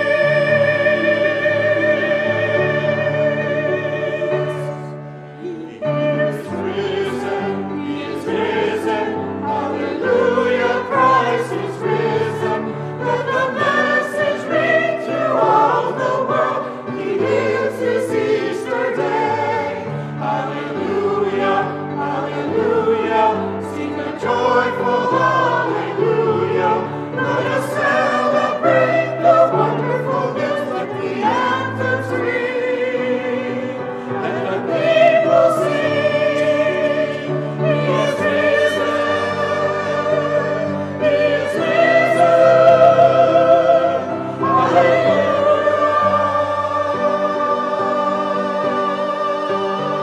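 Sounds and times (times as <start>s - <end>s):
choir singing in parts: 0.0s - 50.0s.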